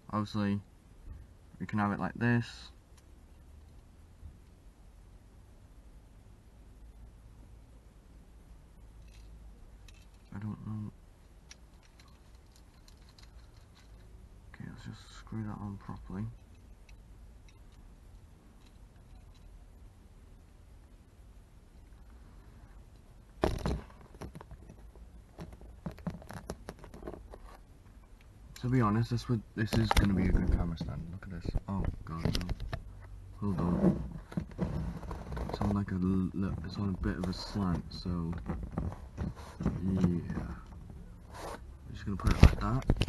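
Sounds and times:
low steady rumble: 0.0s - 43.0s
small clicks and scrapes: 9.0s - 10.5s, 11.2s - 14.2s, 15.8s - 19.6s, 22.9s - 28.7s, 29.7s - 43.0s.

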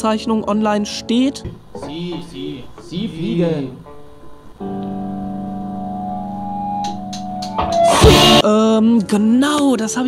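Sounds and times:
distorted guitar chord ringing: 1.6s - 8.4s
drum hit with cymbal crash: 7.8s - 8.4s.

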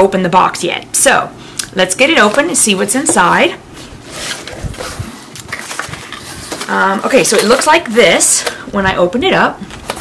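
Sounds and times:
cardboard box scraping and rustling: 2.3s - 7.7s.

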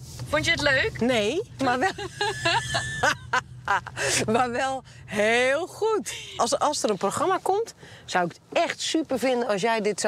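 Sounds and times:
car engine drone: 0.0s - 7.1s
road noise in car cabin: 0.0s - 10.0s
women laughing: 1.6s - 4.4s.

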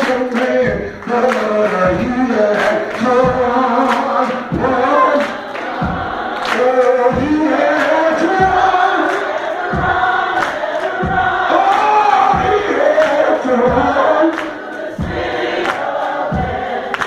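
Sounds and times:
congregation voices: 0.0s - 17.0s
gospel group singing: 0.0s - 17.0s
regular beat: 0.1s - 16.9s.

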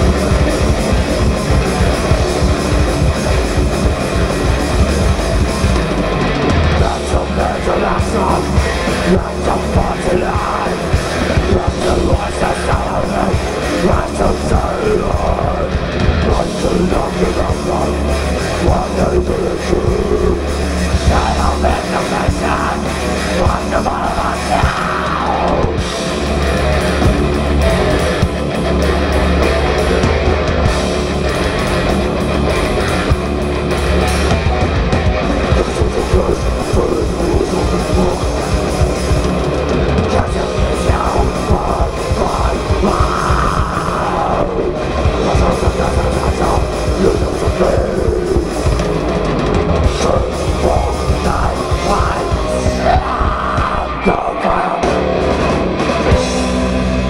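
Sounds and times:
bass guitar: 0.0s - 57.0s
distorted electric guitars: 0.0s - 57.0s
drum kit: 0.0s - 57.0s.

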